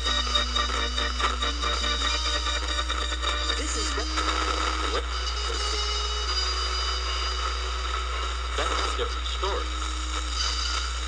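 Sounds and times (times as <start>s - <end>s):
low hum and hiss: 0.0s - 11.0s
thin held tone: 0.0s - 11.0s
person talking: 3.5s - 5.8s.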